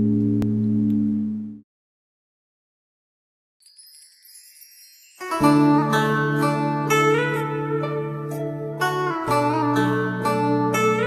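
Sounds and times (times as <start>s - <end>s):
high shimmer of chimes: 3.6s - 6.5s.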